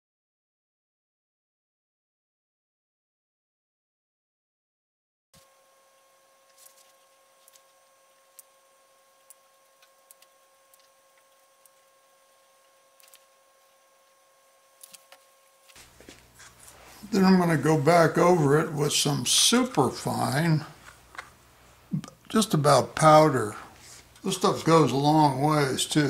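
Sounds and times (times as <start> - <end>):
faint steady hum: 5.4 - 26.0.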